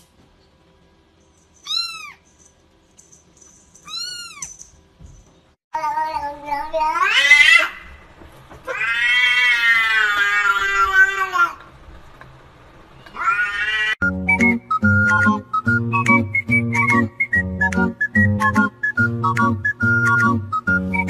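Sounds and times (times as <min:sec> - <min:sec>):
cat meowing loudly: 0:08.7 - 0:11.5, 0:13.1 - 0:14.0.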